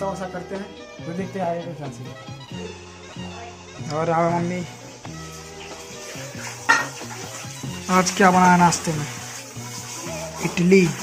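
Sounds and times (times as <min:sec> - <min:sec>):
clatter of pots and utensils: 0:06.1 - 0:10.6.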